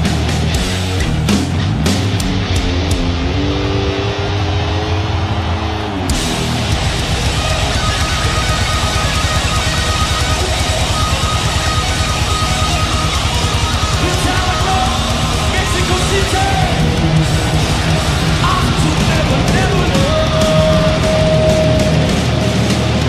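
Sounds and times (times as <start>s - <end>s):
heavy metal band playing: 0.0s - 23.0s.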